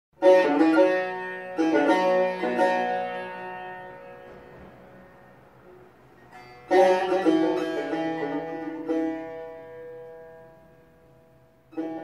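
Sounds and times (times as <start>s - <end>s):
plucked lute runs: 0.2s - 12.0s.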